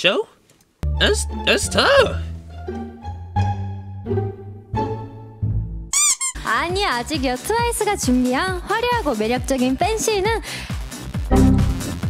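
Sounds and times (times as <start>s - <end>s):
plucked-string comedy music: 0.8s - 7.2s, 11.3s - 12.0s
high squeaky sliding sound: 6.0s - 6.4s.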